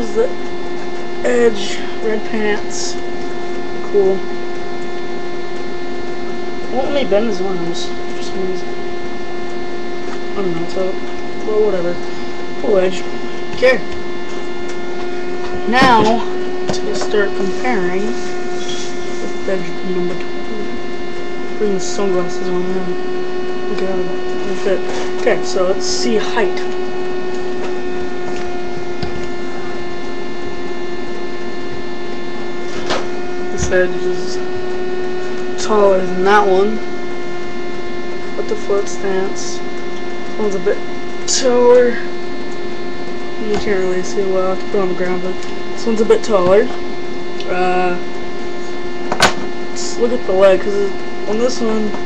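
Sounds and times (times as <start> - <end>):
electrical hum: 0.0 - 52.0.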